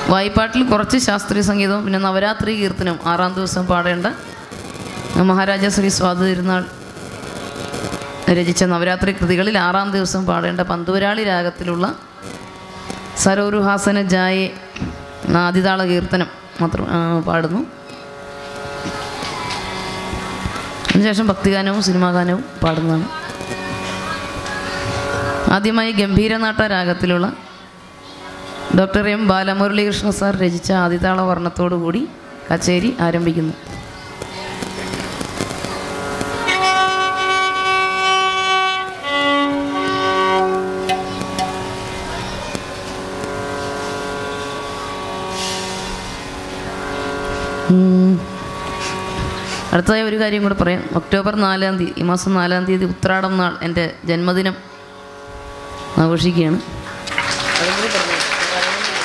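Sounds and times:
shruti drone: 0.0 - 59.0
violin notes: 34.1 - 49.6
short loud note: 34.6 - 42.2.

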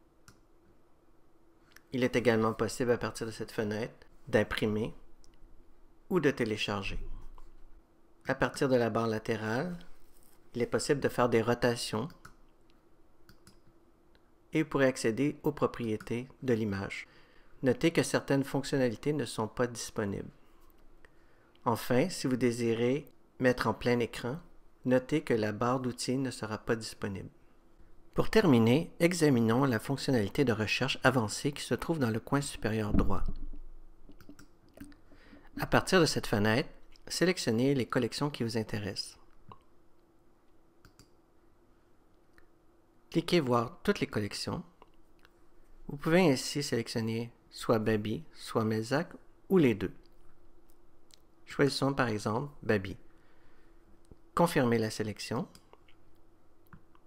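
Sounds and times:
faint steady hum: 0.0 - 57.0
computer mouse clicks: 13.2 - 13.7, 34.1 - 35.0, 40.8 - 41.2.

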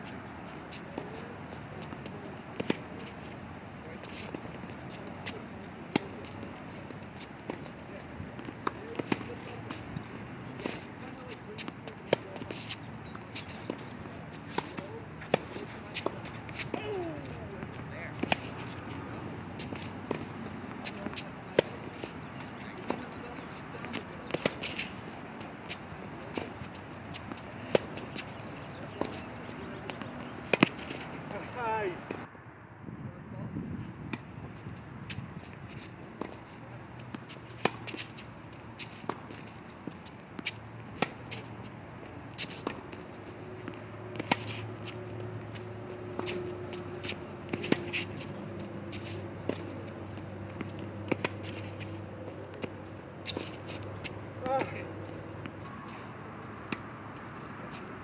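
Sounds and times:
tennis balls struck and bouncing: 0.0 - 32.3, 35.1 - 58.0.

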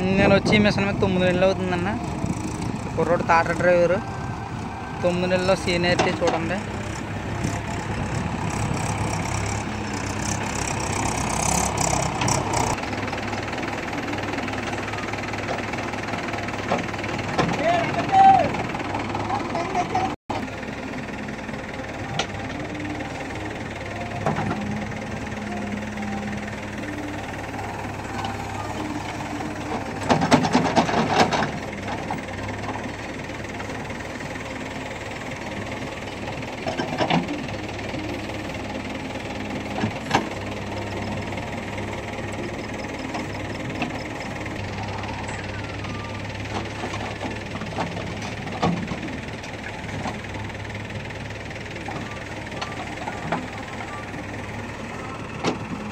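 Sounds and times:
diesel engine under load: 0.0 - 55.9.

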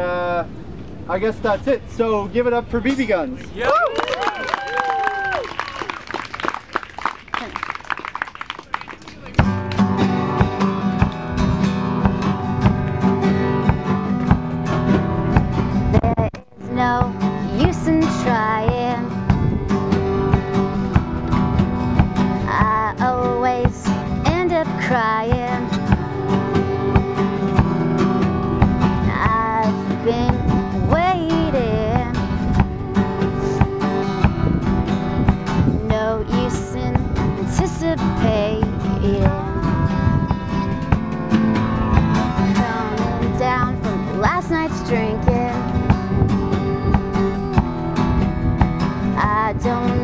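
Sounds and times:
live band with drums and guitar: 9.0 - 16.2, 16.8 - 50.0.

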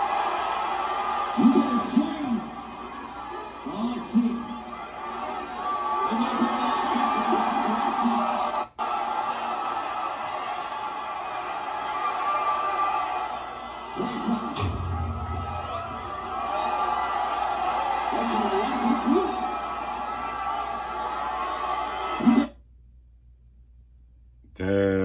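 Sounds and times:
crowd cheering and shouting: 0.0 - 22.5.

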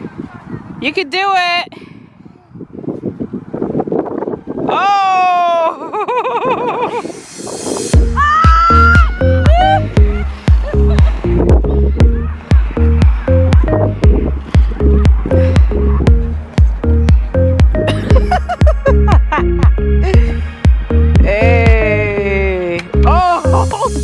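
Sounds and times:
rising swoosh: 6.9 - 17.9
upbeat electronic music: 7.6 - 24.0
children shouting and squealing: 8.0 - 17.6.

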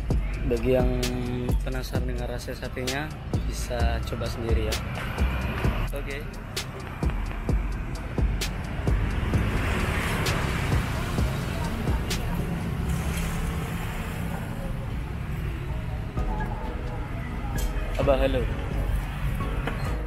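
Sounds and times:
music: 0.0 - 13.1, 16.0 - 20.0
traffic rumble: 0.0 - 20.0
vehicle passing by: 4.1 - 16.2
faint voices: 9.4 - 19.9.

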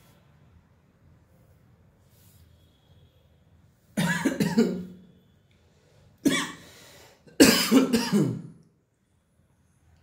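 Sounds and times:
man coughing: 4.0 - 4.9, 6.2 - 6.6, 7.3 - 8.5.

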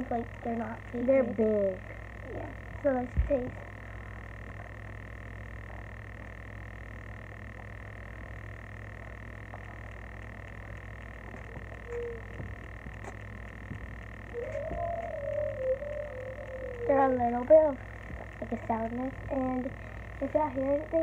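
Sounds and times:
constant high-pitched tone: 0.0 - 21.0
low rumble of wind: 0.0 - 21.0
short wavering hum: 0.0 - 21.0.

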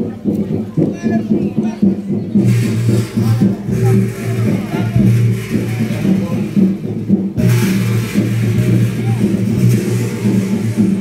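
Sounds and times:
faint voices: 0.0 - 11.0
gong beaten with a mallet: 2.4 - 11.0.

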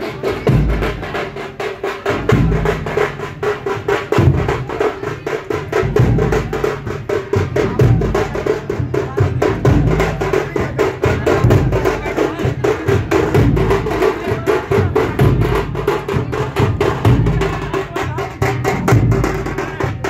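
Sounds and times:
heavy low dhol beats: 0.0 - 20.0
sharp tasha drum strokes: 0.0 - 20.0.

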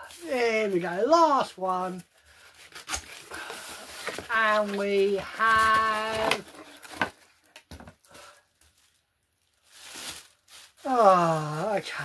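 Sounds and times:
plastic packaging rustling: 0.0 - 11.7.

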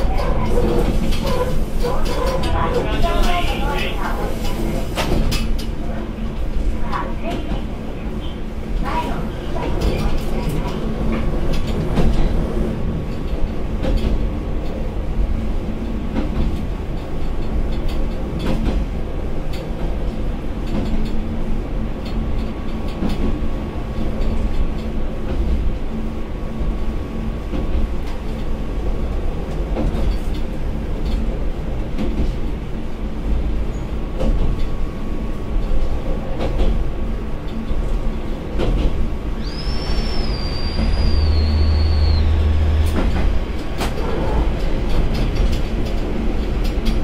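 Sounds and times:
railcar engine and rolling rumble: 0.0 - 47.0
high wavering wheel squeal: 39.4 - 42.9.

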